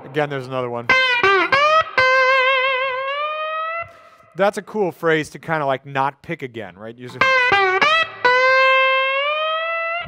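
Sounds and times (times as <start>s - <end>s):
slide electric guitar note: 0.0s - 4.2s, 7.1s - 10.0s.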